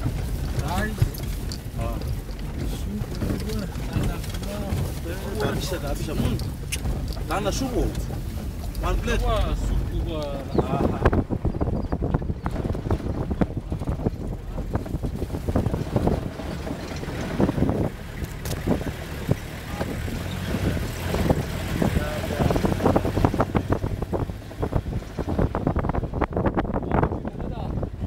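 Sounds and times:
pickup engine rumbling: 0.0 - 28.0
vehicle body knocking and rattling: 0.0 - 28.0
wind buffeting microphone: 0.0 - 28.0.

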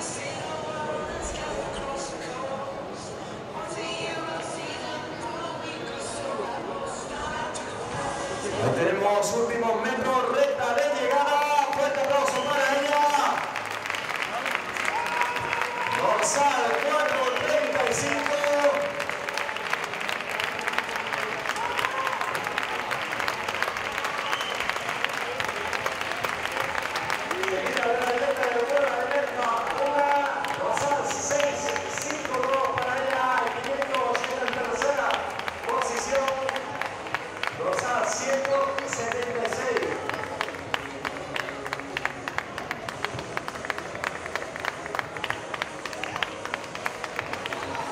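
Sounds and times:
spectators clapping: 10.3 - 47.9.

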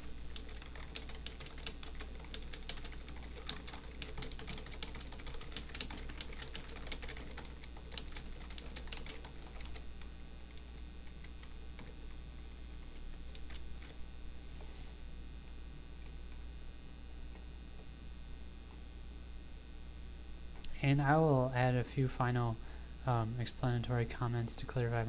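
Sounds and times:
fast typing on keyboard: 0.0 - 9.9, 10.5 - 14.0
steady low hum: 0.0 - 25.0.

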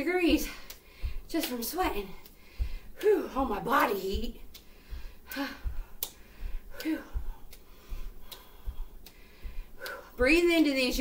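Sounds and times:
bare feet thudding on carpet: 0.1 - 11.0
person breathing hard: 0.4 - 1.3, 2.2 - 3.5, 4.6 - 10.2.

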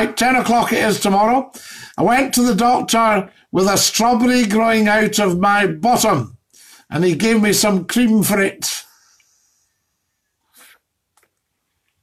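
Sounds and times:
man sniffing breathily: 10.4 - 10.9.

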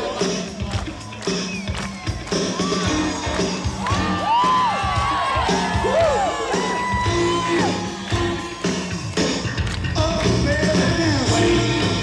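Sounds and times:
live rock band playing: 0.0 - 12.0
crowd whooping: 0.2 - 9.6.

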